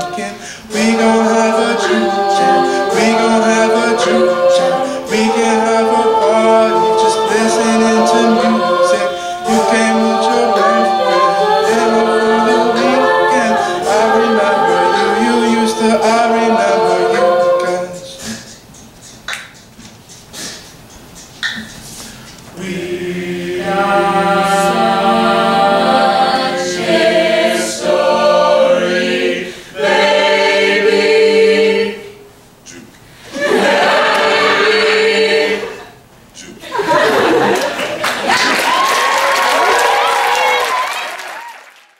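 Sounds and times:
a cappella group singing chords: 0.0s - 40.8s.

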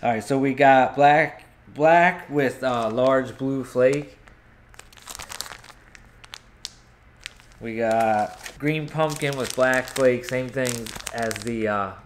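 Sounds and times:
plastic bag crinkling: 2.6s - 11.8s.

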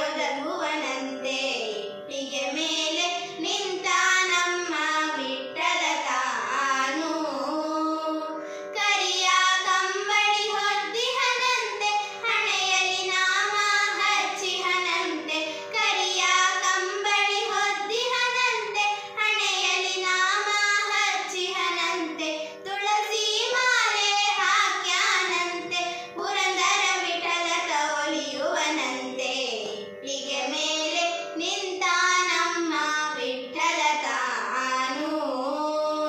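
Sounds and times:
girls singing devotional song: 0.0s - 36.0s.

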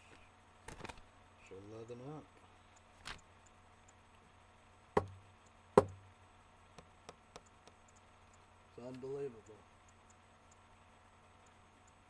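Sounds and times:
faint ticks: 2.3s - 4.4s, 5.3s - 5.6s, 6.7s - 12.0s
sharp knocks on hard surface: 5.0s - 5.2s, 5.8s - 6.0s.

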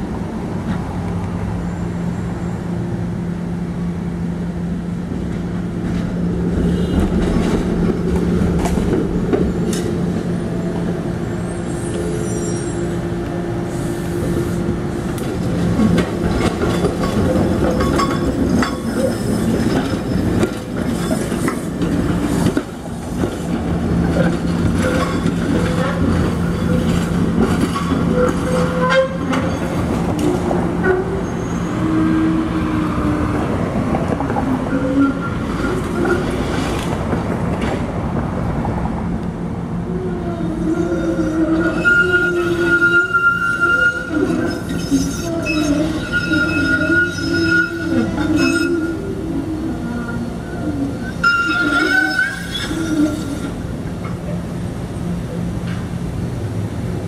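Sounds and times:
streetcar humming: 0.0s - 57.0s
wheels squealing on rail: 11.2s - 14.7s, 15.8s - 23.4s, 24.1s - 33.4s, 34.3s - 36.9s, 40.2s - 54.4s.

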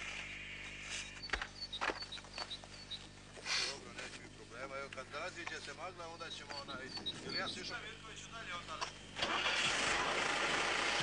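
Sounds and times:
rocket motors roaring: 6.0s - 11.0s.

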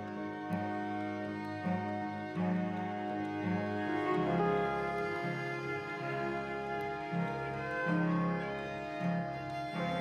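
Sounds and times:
slow cello and violin music: 0.0s - 10.0s.

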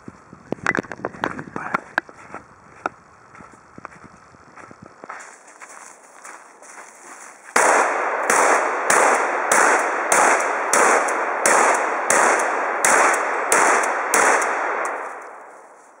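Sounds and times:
echo among trees: 7.5s - 15.8s
shotgun shots: 7.6s - 15.4s.

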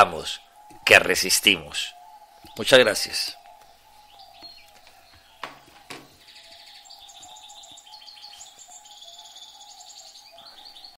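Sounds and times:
birds chirping: 0.0s - 11.0s
faint steady tone: 0.0s - 11.0s.

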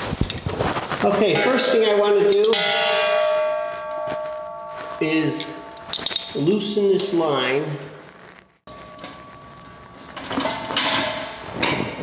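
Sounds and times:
wrench clinking on metal fitting: 5.3s - 6.6s.

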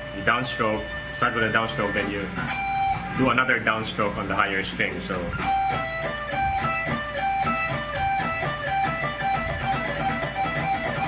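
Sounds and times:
electric guitar picked notes: 0.0s - 11.0s.

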